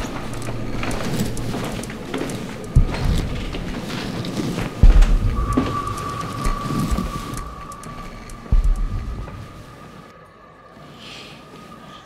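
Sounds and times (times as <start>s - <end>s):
deep rumbling low boom: 0.0s - 9.8s
high held tone: 0.0s - 10.1s.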